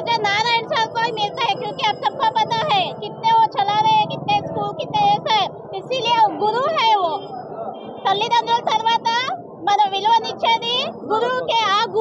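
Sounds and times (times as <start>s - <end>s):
woman speaking: 0.0s - 7.3s, 8.1s - 12.0s.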